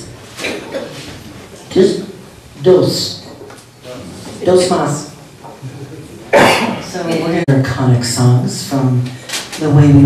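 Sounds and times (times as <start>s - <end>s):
loud cough: 0.4s - 1.0s, 6.3s - 6.9s.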